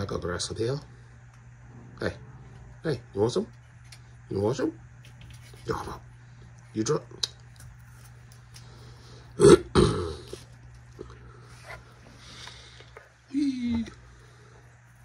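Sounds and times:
steady low hum: 0:00.0 - 0:15.0.

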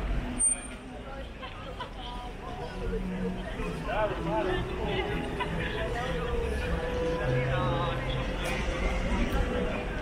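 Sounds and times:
low traffic rumble: 0:00.0 - 0:10.0
voices of passers-by: 0:00.0 - 0:10.0.

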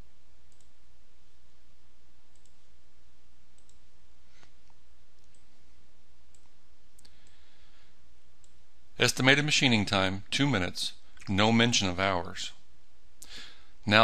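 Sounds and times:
low electrical hum: 0:00.0 - 0:14.0
computer mouse clicks: 0:00.5 - 0:00.8, 0:02.3 - 0:02.7, 0:03.6 - 0:05.5.

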